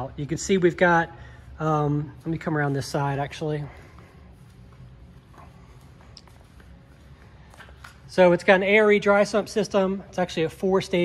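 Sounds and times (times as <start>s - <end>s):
faint clicks and rustles: 2.1s - 8.3s.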